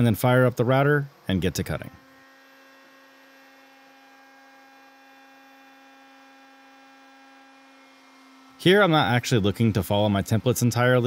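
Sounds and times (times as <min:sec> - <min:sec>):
router electric hum: 0:00.0 - 0:11.0.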